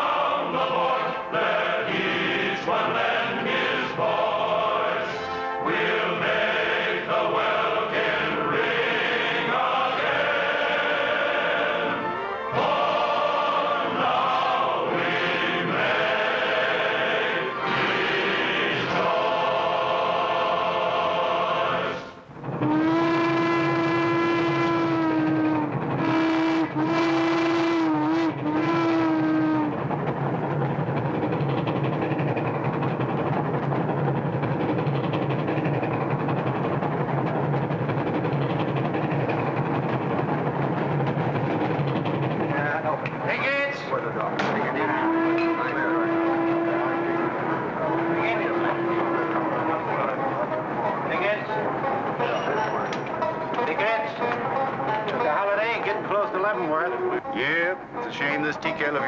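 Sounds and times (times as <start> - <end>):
train rumbling: 0.0 - 59.0
steam locomotive whistle: 4.8 - 6.2, 20.7 - 30.0, 43.7 - 54.3.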